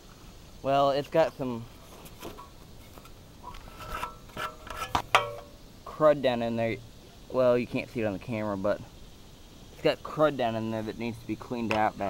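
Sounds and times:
metal gas tank knocks and clinks: 4.0s - 5.5s.

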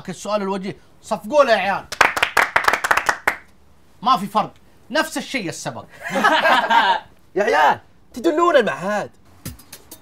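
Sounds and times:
men clapping hands: 1.9s - 3.5s.

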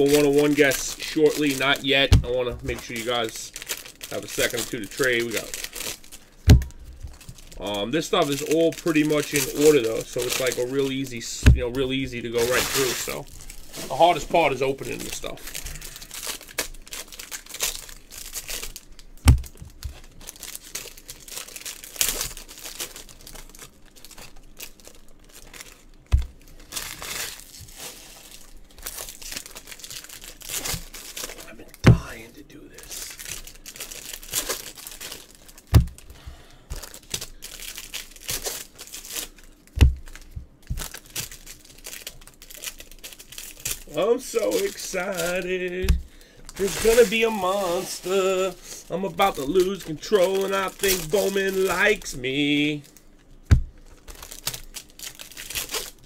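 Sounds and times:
foil wrappers tearing and crinkling: 0.0s - 56.0s
dull knocks: 6.5s - 6.8s.

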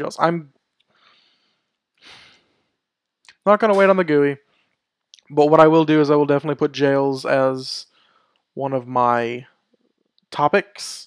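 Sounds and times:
man exhaling: 2.0s - 2.5s.

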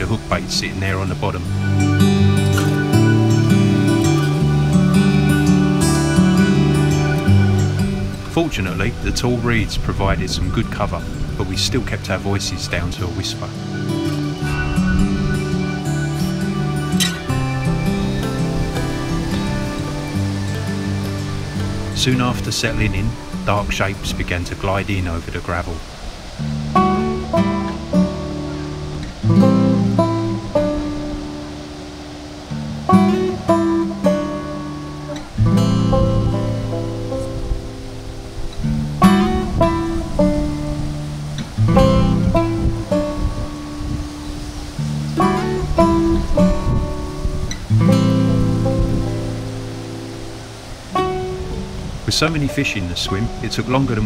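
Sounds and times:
acoustic guitar plucking: 0.0s - 54.0s.

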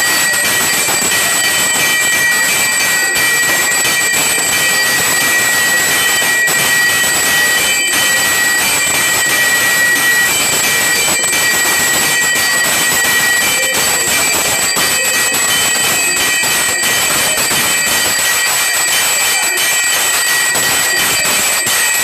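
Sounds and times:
bells gongs and drums din: 0.0s - 22.0s
ringing bells: 0.0s - 22.0s.

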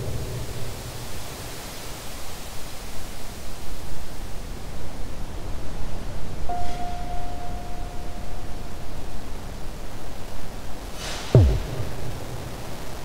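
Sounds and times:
synthesizer hiss: 8.7s - 13.0s
pulsing low synth rumble: 11.4s - 13.0s.

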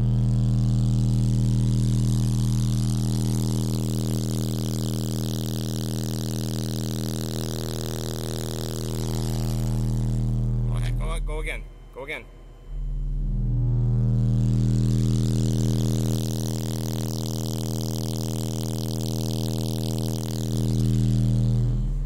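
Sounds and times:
buzzing rattle: 0.0s - 11.6s, 12.6s - 22.0s
subwoofer low sine tone: 0.0s - 22.0s.

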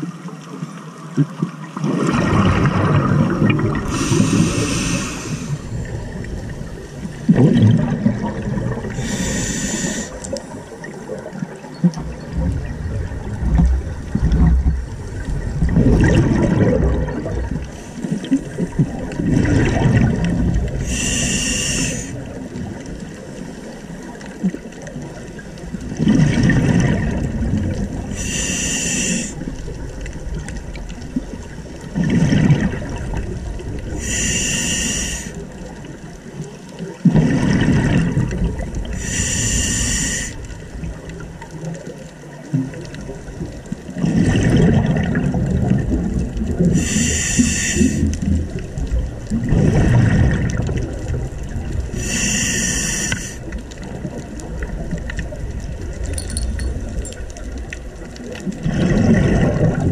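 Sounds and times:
exhaled bubbles rushing: 1.2s - 21.0s, 24.2s - 28.2s, 29.4s - 34.0s, 36.8s - 39.0s, 40.7s - 52.0s, 58.1s - 59.9s
hissing inhalation through regulator: 3.8s - 6.0s, 8.8s - 10.6s, 20.8s - 22.2s, 28.1s - 29.4s, 33.9s - 35.5s, 38.9s - 40.5s, 46.7s - 48.1s, 51.9s - 53.5s.

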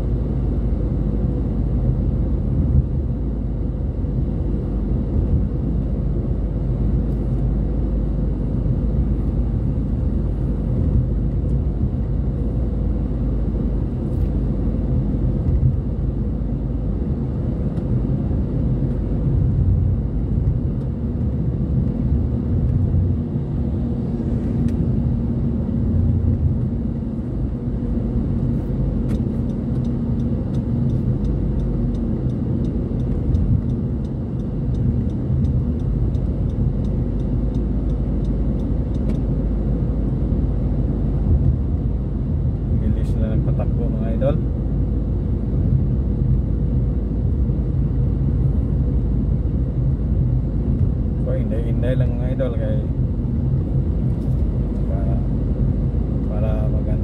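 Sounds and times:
car road and engine rumble: 0.0s - 57.0s.

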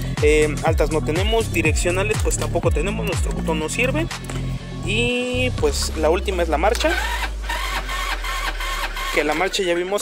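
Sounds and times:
scooter starter motor cranking: 6.6s - 10.0s.

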